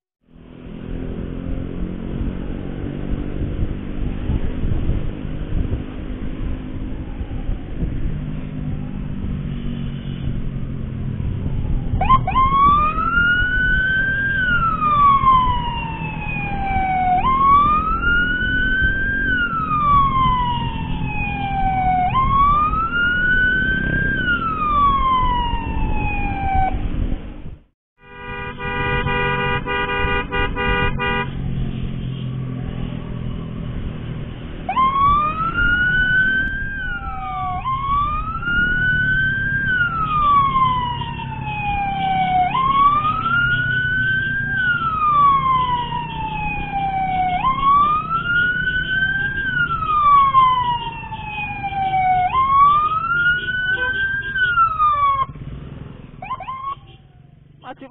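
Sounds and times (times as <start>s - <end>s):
motorcycle rumble: 0.2s - 57.9s
wind: 0.2s - 57.9s
emergency siren wailing: 0.3s - 57.9s
multi-note horn blast: 28.0s - 31.4s.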